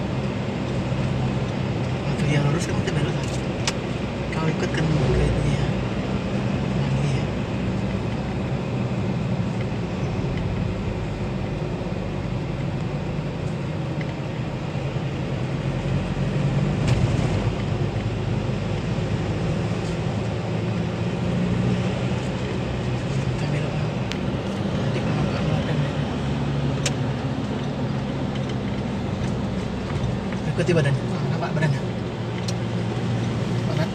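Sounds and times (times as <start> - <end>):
vehicle engine hum and road noise: 0.0 - 33.9.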